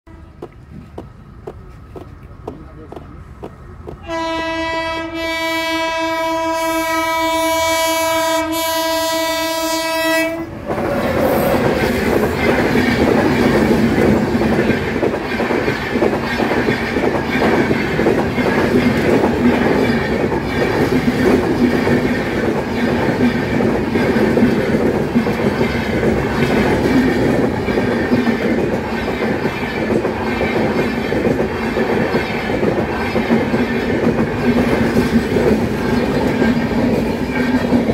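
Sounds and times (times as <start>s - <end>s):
train rumbling past: 0.1s - 37.9s
locomotive air horn blast: 4.0s - 10.6s
wheels clacking over rail joints: 10.6s - 37.9s.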